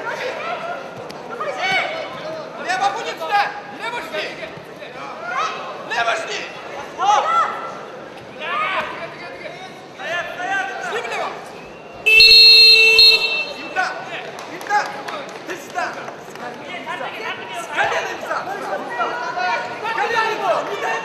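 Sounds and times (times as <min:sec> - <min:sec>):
loud electronic buzzer: 0:12.1 - 0:13.8.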